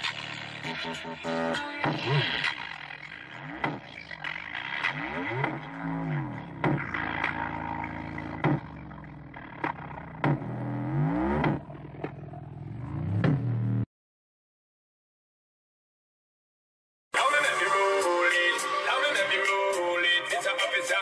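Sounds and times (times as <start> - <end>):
loud bass-boosted electronic music: 0.0 - 13.8, 17.2 - 21.0.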